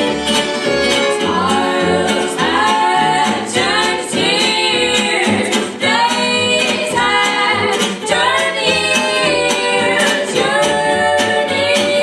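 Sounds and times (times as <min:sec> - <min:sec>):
guitar strumming chords: 0:00.0 - 0:12.0
upright bass plucking: 0:00.0 - 0:12.0
women singing in harmony: 0:01.0 - 0:12.0.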